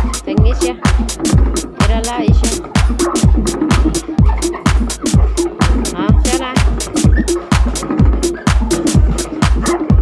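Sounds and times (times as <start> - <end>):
electronic dance music: 0.0 - 10.0
hi-hat strikes: 0.0 - 10.0
kick drum: 0.0 - 10.0.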